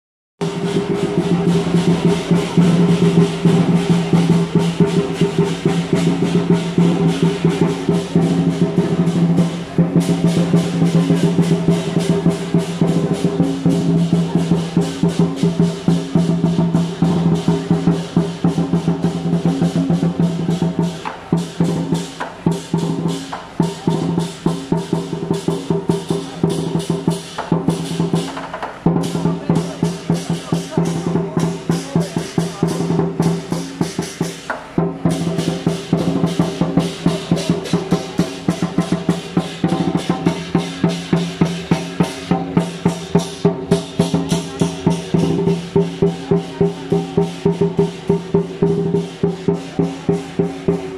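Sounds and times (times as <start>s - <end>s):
big drum beating: 0.4s - 50.9s
cymbals clashing: 0.4s - 50.9s.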